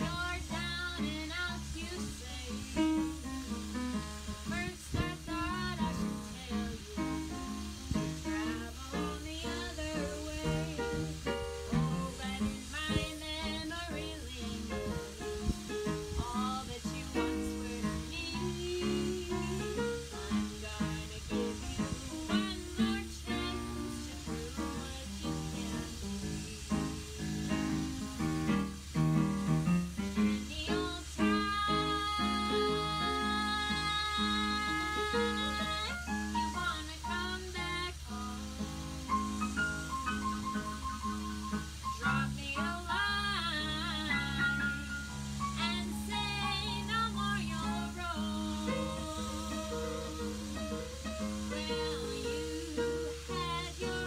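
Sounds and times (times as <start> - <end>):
digital piano: 0.0 - 54.0
woman singing jazz and blues: 0.0 - 54.0.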